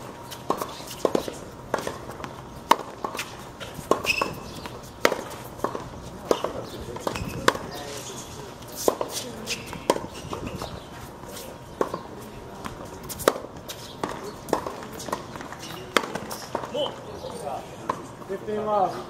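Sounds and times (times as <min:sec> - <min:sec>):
footsteps on court: 0:00.2 - 0:18.4
tennis ball struck by rackets: 0:00.3 - 0:07.8, 0:08.8 - 0:10.8, 0:11.7 - 0:12.0, 0:12.6 - 0:16.7.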